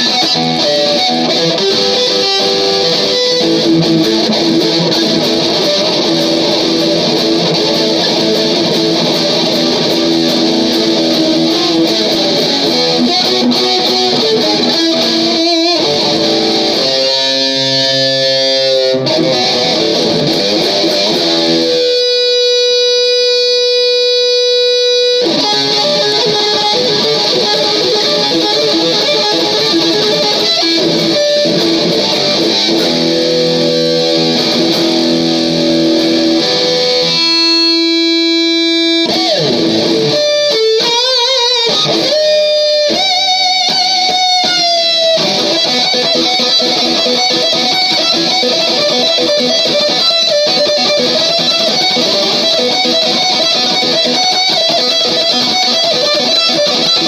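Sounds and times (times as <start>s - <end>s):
electric guitar solo: 0.0s - 57.0s.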